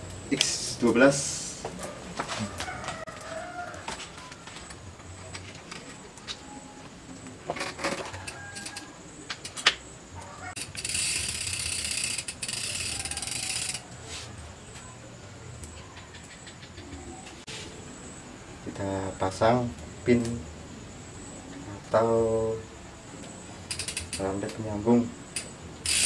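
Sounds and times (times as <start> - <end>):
loud steady hiss: 0.0 - 1.7, 17.4 - 26.0
rooster crowing: 2.2 - 4.7, 7.9 - 9.1, 10.2 - 10.7, 12.5 - 15.0
bicycle chain metallic clicks: 7.6 - 9.8, 10.5 - 13.8, 23.6 - 24.7, 25.3 - 26.0.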